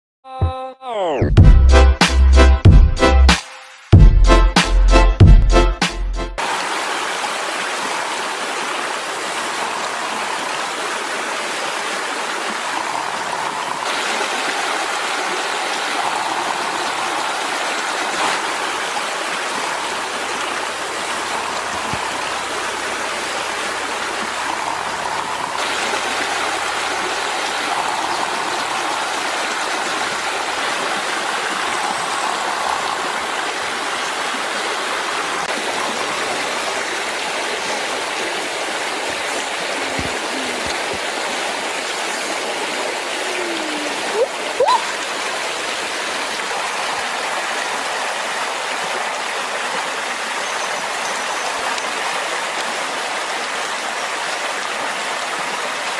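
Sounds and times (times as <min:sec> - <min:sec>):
stream rushing over rocks: 0:06.4 - 0:55.9.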